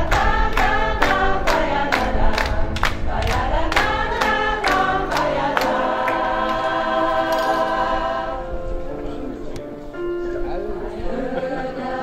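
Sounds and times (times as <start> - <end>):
people clapping a beat: 0.0 - 7.5
choir singing: 0.0 - 8.9, 10.6 - 12.0.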